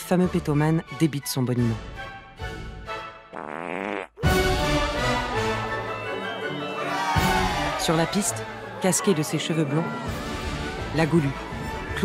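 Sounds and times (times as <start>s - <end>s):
music: 0.0s - 12.0s
fart noises: 3.3s - 4.3s.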